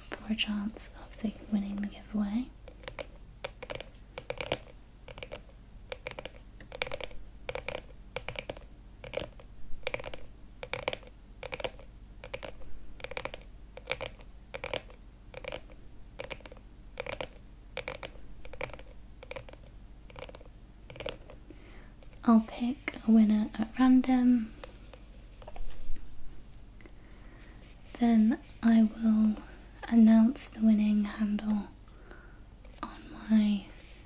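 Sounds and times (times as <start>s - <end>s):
fingernails tapping on plastic case: 2.8s - 15.6s.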